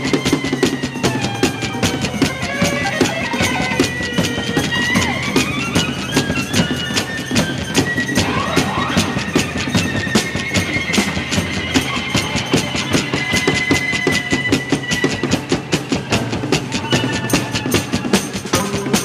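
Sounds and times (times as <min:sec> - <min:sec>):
drum kit beat: 0:00.0 - 0:19.0
strummed guitars: 0:00.0 - 0:19.0
sliding lead guitar line: 0:00.9 - 0:14.4.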